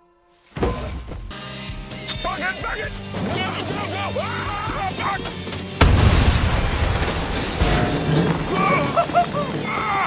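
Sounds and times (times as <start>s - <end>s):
car explosion blast: 5.8s - 8.0s.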